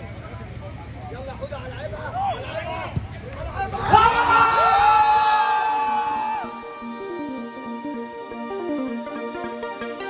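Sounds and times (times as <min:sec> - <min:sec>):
men shouting and cheering: 0:03.6 - 0:07.0
long steady cry: 0:04.3 - 0:09.6.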